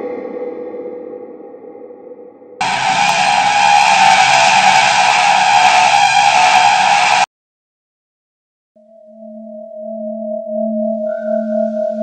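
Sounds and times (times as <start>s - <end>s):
harsh distorted screeching blare: 2.6s - 7.3s.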